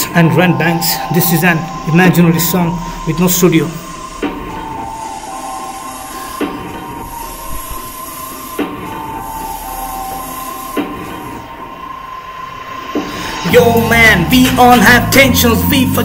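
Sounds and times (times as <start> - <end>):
heavy hits: 0.0 - 11.9
sustained high tones: 0.0 - 16.0.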